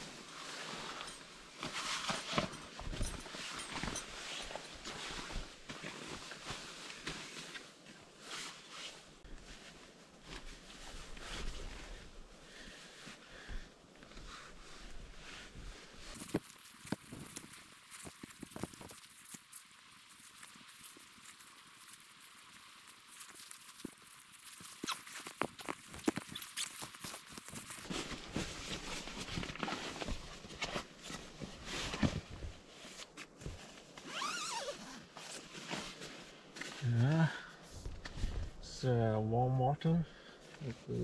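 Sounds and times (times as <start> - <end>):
clothing and sleeping bag rustling: 0.0 - 38.7.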